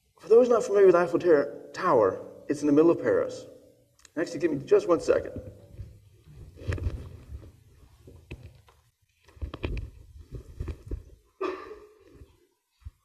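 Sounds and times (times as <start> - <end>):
microphone handling thumps: 5.3 - 8.6, 9.3 - 11.2.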